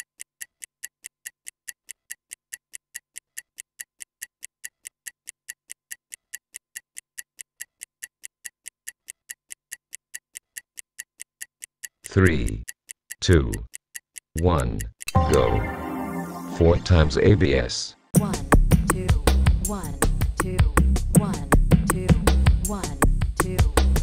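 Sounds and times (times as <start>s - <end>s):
stopwatch ticking: 0.0s - 15.5s.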